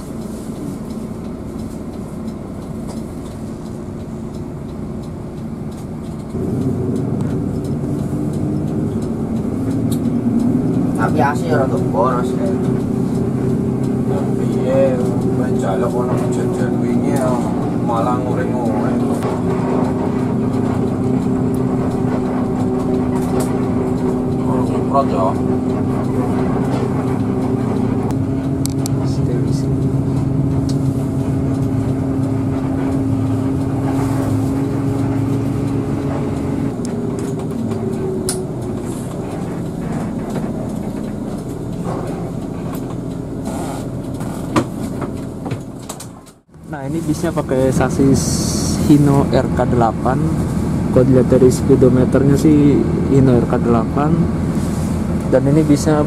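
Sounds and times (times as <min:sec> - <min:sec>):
bus diesel engine drone: 0:00.0 - 0:56.0.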